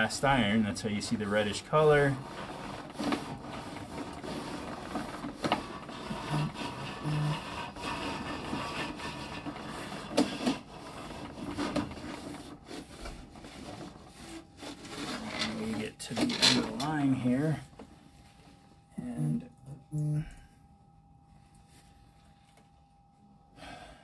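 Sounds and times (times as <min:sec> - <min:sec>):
cable scraping through reel: 0:00.0 - 0:17.6.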